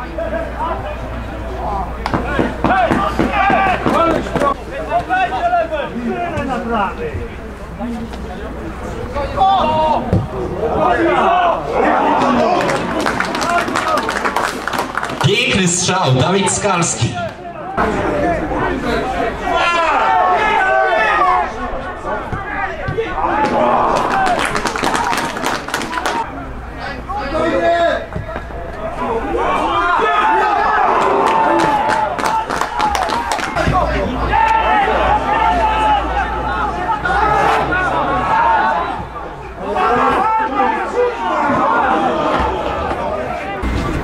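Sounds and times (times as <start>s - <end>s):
men calling and chattering: 0.0s - 44.0s.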